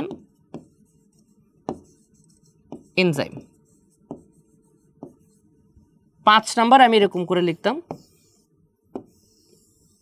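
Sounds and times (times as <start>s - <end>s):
pen tapping on board: 0.0s - 0.8s, 1.6s - 2.0s, 2.6s - 4.4s, 5.0s - 5.2s, 7.8s - 8.2s, 8.9s - 9.4s.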